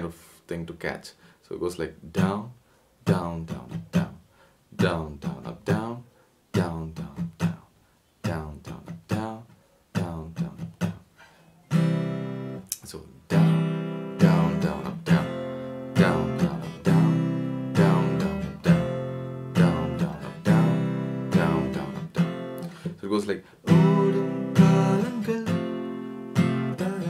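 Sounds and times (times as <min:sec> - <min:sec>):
acoustic guitar strumming: 0:02.0 - 0:27.0.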